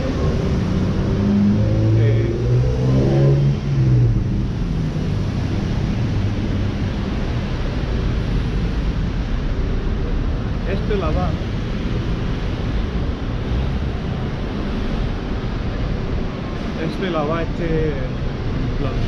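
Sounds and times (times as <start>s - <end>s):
cars driving past: 0.0s - 19.0s.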